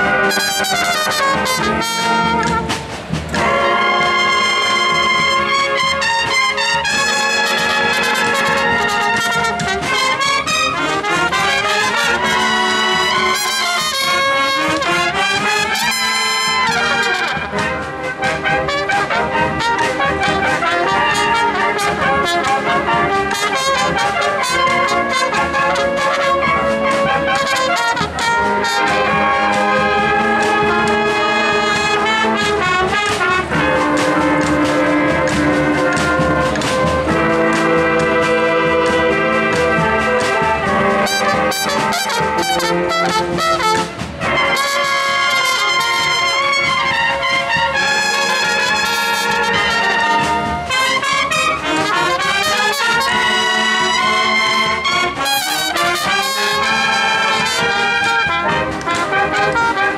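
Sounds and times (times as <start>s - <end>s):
massed bugles playing march melody: 0.0s - 59.9s
steady drum beat: 0.0s - 59.9s.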